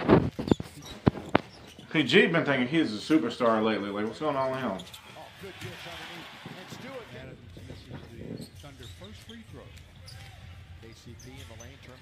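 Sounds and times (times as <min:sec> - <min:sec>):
arena crowd noise: 0:01.8 - 0:12.0
commentators talking: 0:01.8 - 0:12.0.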